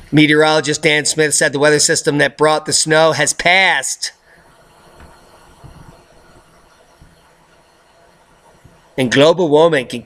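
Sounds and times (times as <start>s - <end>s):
background hiss and rumble: 0.0s - 10.0s
soft low thumps: 5.0s - 7.2s.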